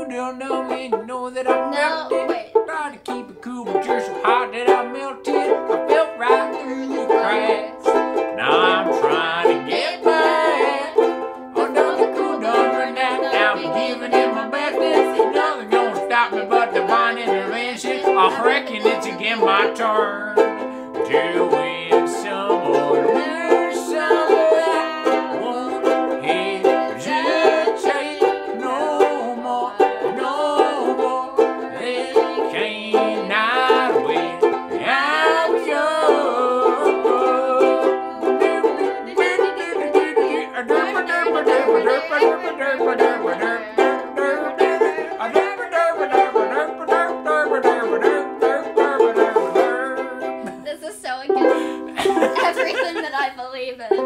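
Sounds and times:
man singing: 0.0 - 50.6
banjo ukuleles strummed: 0.0 - 54.0.

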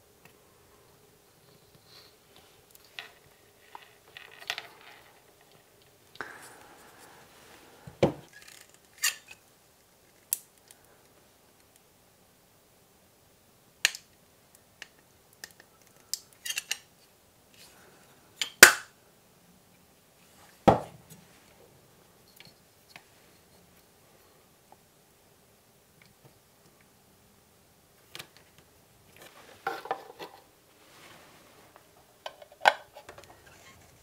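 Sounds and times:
louder knocks on workbench: 20.7 - 20.9.

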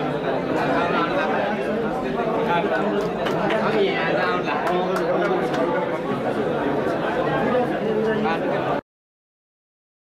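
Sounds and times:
people chattering: 0.0 - 8.8.

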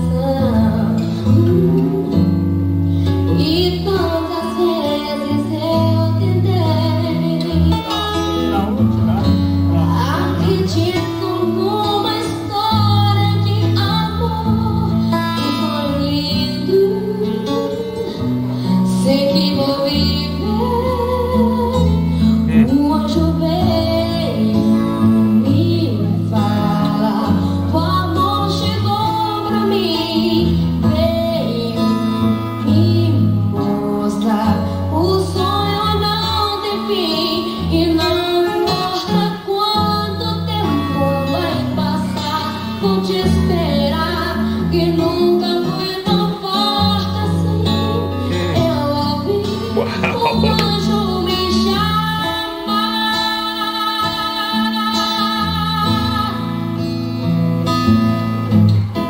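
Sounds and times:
strummed acoustic guitar: 0.0 - 59.0
boy singing into microphone: 3.3 - 8.6, 18.9 - 56.4.

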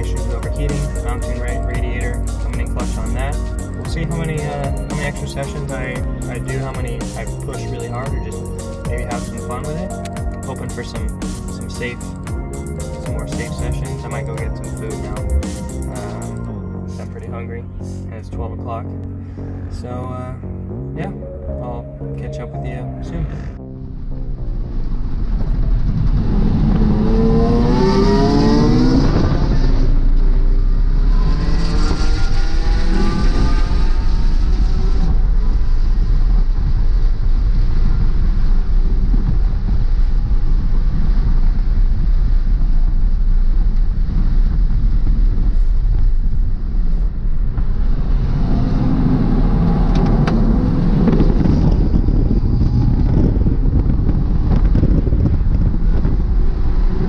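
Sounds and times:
car engine revving: 0.0 - 36.3, 47.0 - 57.0
road and wind noise: 0.0 - 57.0.

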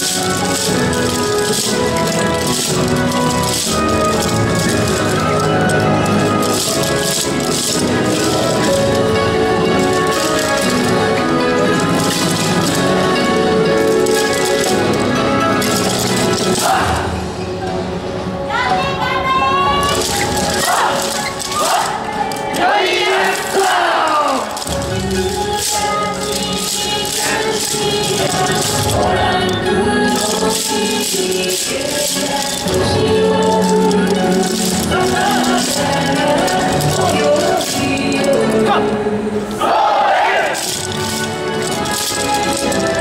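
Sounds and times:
wooden clappers clattering: 0.0 - 17.1, 19.6 - 39.6, 40.2 - 43.0
dancers' shouted calls: 16.2 - 17.2, 18.5 - 24.7, 33.6 - 41.2.

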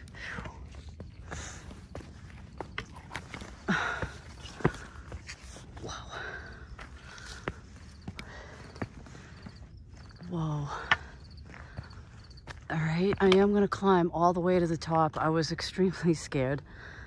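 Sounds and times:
hard breathing: 0.0 - 12.6, 16.6 - 17.0
footsteps on rock and stones: 0.0 - 14.1.

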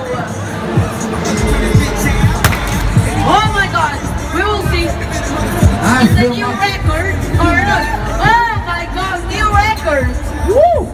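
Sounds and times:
music with thumping beat: 1.7 - 3.1.

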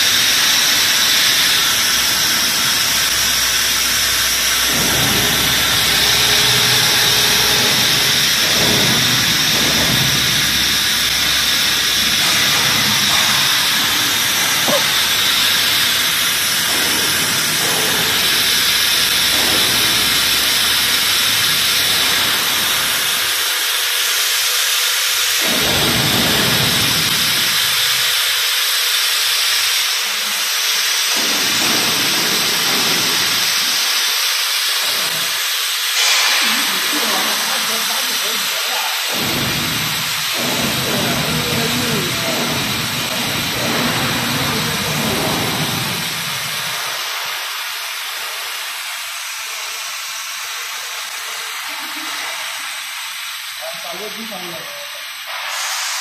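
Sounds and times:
machine hissing: 0.0 - 56.0.

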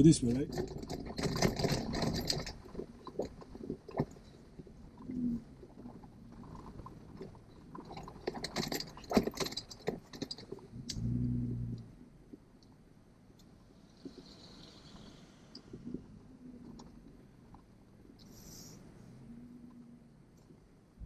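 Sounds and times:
loose items jangling and rattling: 0.0 - 4.6, 5.8 - 10.7
vehicle engine and tyres rumbling: 0.0 - 21.0.

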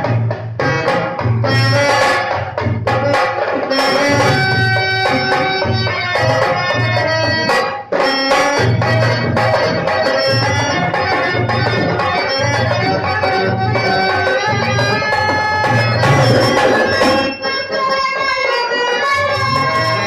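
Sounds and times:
dholak drum rhythm: 0.0 - 20.0
harmonium melody: 0.0 - 20.0.

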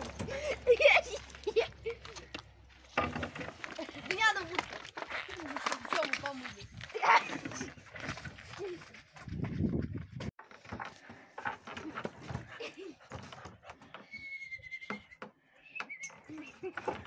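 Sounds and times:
children's voices: 0.0 - 2.4, 3.6 - 7.8.

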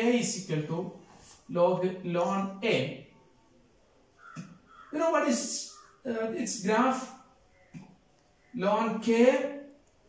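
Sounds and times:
person speaking: 0.0 - 3.2, 4.9 - 7.3
marker squeaking on whiteboard: 4.2 - 5.0.

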